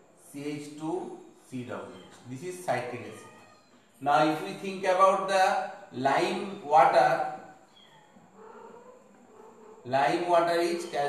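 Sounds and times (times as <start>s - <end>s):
marker squeaking on whiteboard: 1.4s - 4.0s, 6.2s - 11.0s.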